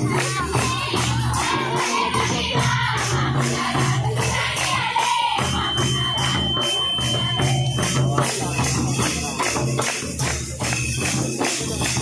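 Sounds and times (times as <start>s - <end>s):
group singing: 0.0s - 8.4s
jingling percussion: 0.0s - 12.0s
steady high tone: 3.3s - 8.9s.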